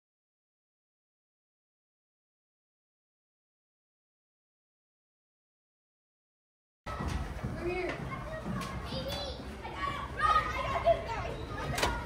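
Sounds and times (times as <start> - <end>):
children shouting and calling: 6.9 - 12.0.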